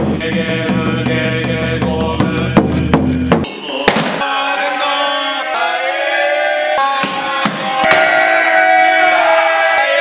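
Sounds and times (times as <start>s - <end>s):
men chanting in held tones: 3.5s - 10.0s.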